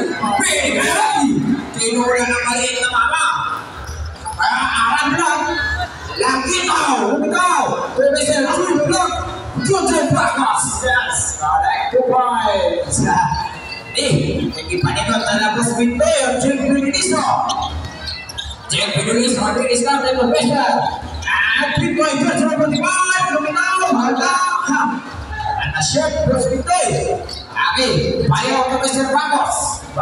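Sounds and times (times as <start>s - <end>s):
voices: 0.0s - 30.0s.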